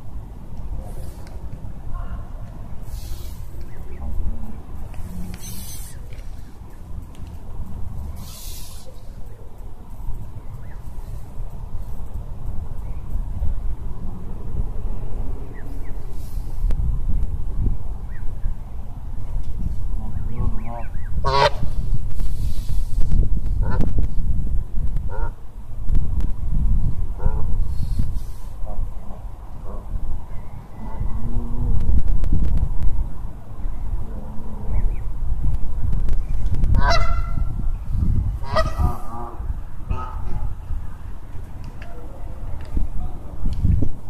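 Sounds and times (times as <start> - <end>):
goose honk: 20.6 - 21.6, 36.8 - 37.4, 38.4 - 39.1.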